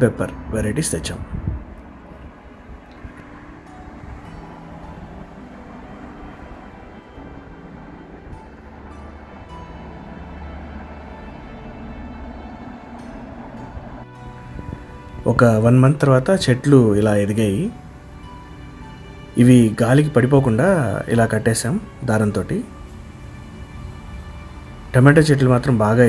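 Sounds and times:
faint background music: 0:00.0 - 0:26.0
low outdoor rumble: 0:00.0 - 0:26.0.

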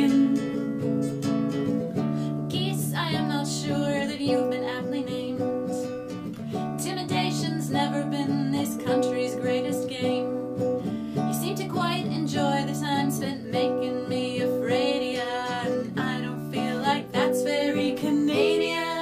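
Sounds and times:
woman singing: 0:00.0 - 0:01.2, 0:02.3 - 0:19.0
acoustic guitar strumming: 0:00.0 - 0:19.0.

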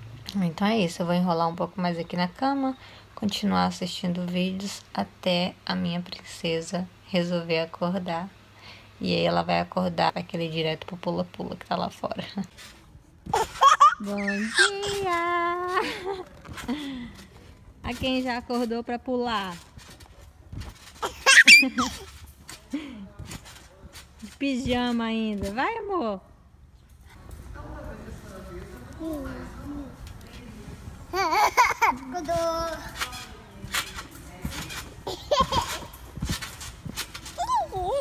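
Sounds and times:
high-pitched laughing and squealing: 0:13.4 - 0:14.9, 0:21.0 - 0:22.1, 0:37.4 - 0:38.0.

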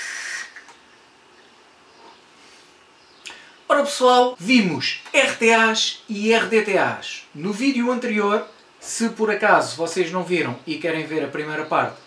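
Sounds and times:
airy hiss of e-cigarette draw: 0:00.0 - 0:00.7.

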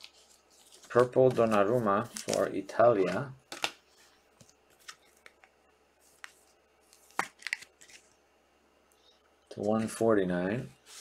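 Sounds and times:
plastic card sleeves crinkling: 0:00.0 - 0:03.8, 0:06.1 - 0:08.1.

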